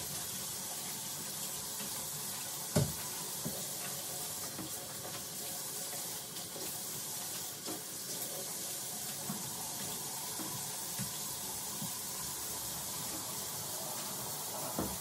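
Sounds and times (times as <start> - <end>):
faucet running: 0.0 - 15.0.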